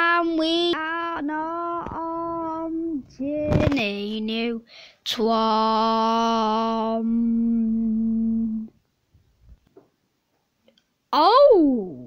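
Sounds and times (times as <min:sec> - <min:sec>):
person humming a steady note: 0:06.1 - 0:08.7.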